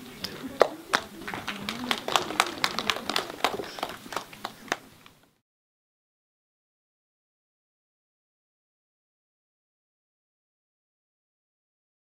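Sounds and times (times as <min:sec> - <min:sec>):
scattered applause: 0:00.0 - 0:05.2.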